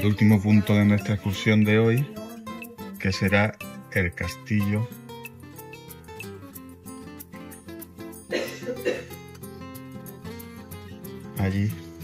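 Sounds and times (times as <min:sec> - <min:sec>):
music with steady beat: 0:00.0 - 0:12.0
person coughing: 0:08.3 - 0:09.2.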